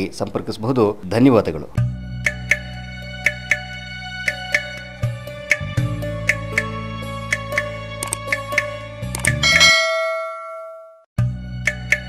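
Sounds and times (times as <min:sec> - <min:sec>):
background music: 0:01.8 - 0:10.2, 0:11.2 - 0:12.0
quick clicks: 0:07.3 - 0:09.4
bell chime ring: 0:09.4 - 0:11.0.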